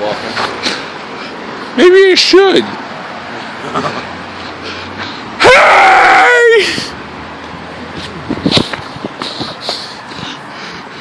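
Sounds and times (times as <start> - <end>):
low street background: 0.0 - 11.0
man yelling loudly: 5.4 - 6.9.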